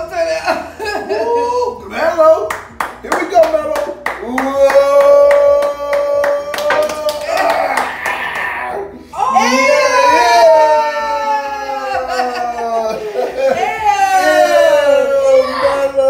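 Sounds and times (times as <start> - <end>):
hand clapping: 2.4 - 8.5
person cheering: 4.2 - 16.0
long wailing voice: 4.4 - 16.0.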